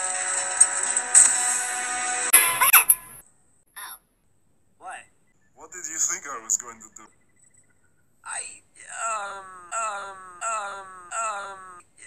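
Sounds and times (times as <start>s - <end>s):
cartoon voice wailing: 2.3s - 3.2s, 8.9s - 12.0s.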